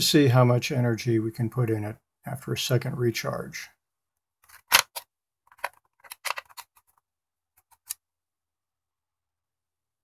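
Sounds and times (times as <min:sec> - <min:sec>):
batteries clicking into charger: 0:04.5 - 0:06.8.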